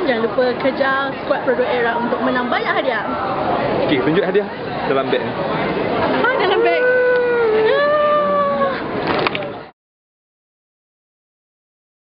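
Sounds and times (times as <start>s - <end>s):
crowd chatter: 0.0s - 9.7s.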